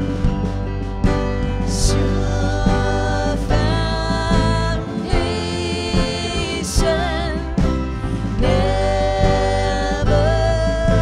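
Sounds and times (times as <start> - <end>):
worship band playing: 0.0 - 11.0
singers holding a long note: 1.6 - 11.0.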